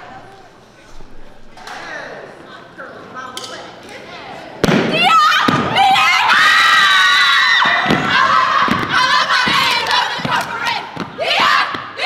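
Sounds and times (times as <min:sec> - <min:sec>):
crowd yelling and cheering: 0:04.9 - 0:12.0
stomps thudding on gym floor: 0:07.6 - 0:11.9.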